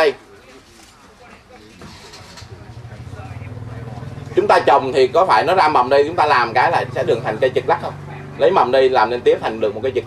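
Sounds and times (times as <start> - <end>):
vehicle engine humming: 1.0 - 10.0.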